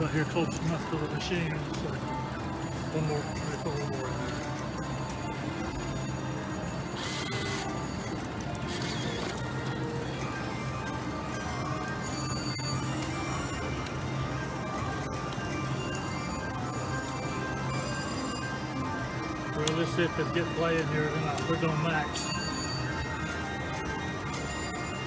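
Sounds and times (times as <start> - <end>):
slot machine jingles and chimes: 0.0 - 25.0.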